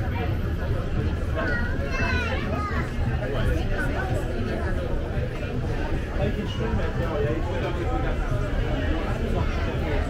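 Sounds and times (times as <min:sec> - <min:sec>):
chatter of people: 0:00.0 - 0:10.0.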